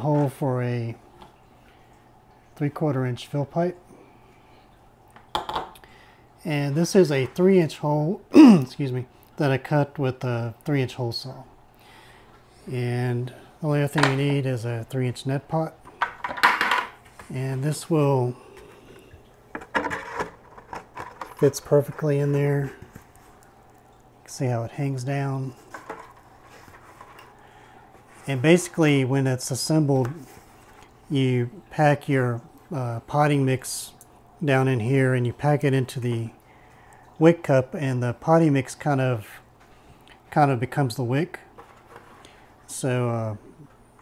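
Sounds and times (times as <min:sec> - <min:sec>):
plastic pipe clattering down: 0:16.0 - 0:17.0.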